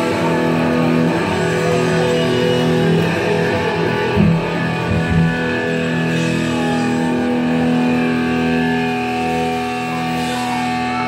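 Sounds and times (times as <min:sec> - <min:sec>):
electric guitars ringing chord: 0:00.0 - 0:11.0.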